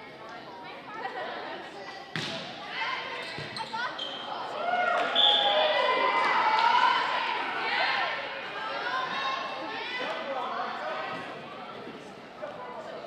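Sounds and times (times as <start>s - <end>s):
spectator chatter: 0.0s - 13.0s.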